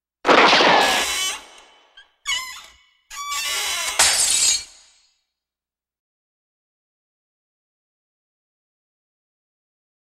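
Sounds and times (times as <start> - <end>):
loud ringing crash: 0.3 - 1.5.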